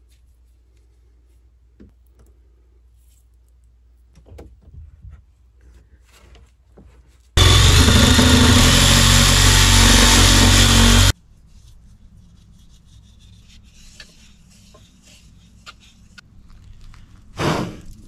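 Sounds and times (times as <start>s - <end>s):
power saw cutting plastic pipe: 7.4s - 11.1s.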